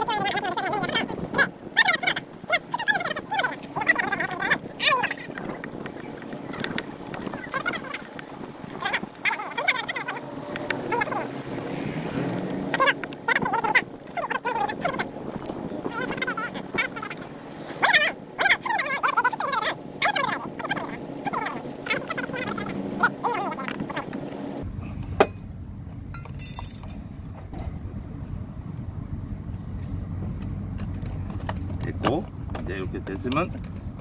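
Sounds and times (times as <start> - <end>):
high-pitched animal calls: 0.0 - 5.7, 6.4 - 11.4, 12.7 - 24.1.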